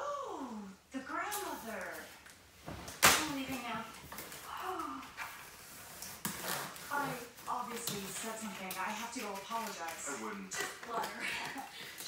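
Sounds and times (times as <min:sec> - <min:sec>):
people talking: 0:00.0 - 0:02.2, 0:03.2 - 0:03.9, 0:04.5 - 0:05.1, 0:06.9 - 0:12.0.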